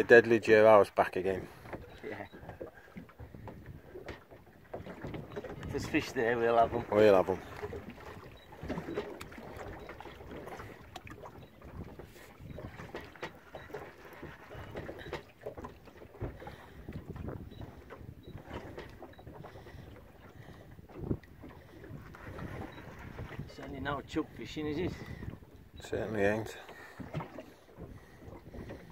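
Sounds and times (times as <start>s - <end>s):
water around boat: 0.0s - 28.9s
wind on microphone: 16.2s - 19.6s, 20.3s - 23.8s.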